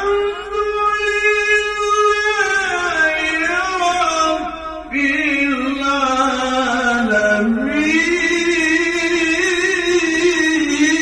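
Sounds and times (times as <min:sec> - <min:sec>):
man chanting devotional song: 0:00.0 - 0:11.0.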